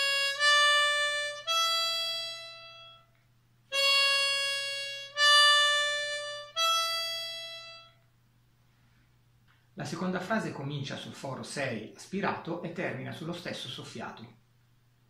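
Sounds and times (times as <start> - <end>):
harmonica rising phrase: 0.0 - 3.1, 3.7 - 8.0.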